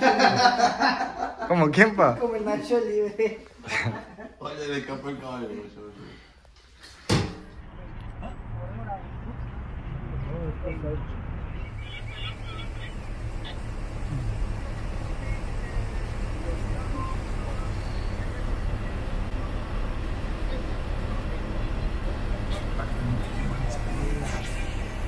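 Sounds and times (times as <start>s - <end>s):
road noise: 7.4s - 25.0s
vehicle engine rumble: 7.5s - 25.0s.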